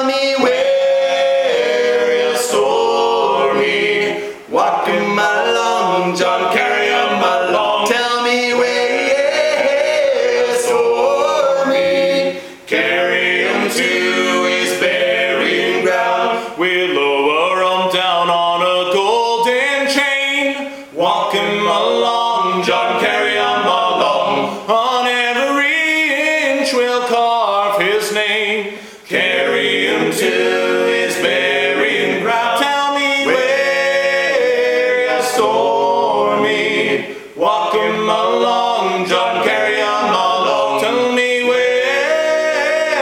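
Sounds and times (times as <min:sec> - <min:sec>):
men singing a cappella harmony: 0:00.0 - 0:43.0.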